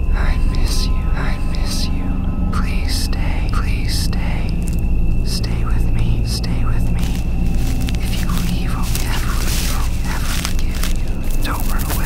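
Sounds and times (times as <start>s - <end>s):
breathy whispering voices: 0.0s - 12.0s
low drone: 0.0s - 12.0s.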